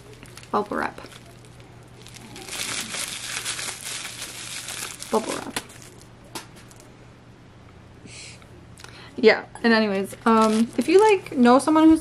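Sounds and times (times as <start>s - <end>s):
bubble wrap crackling: 0.0s - 6.9s, 10.1s - 11.4s.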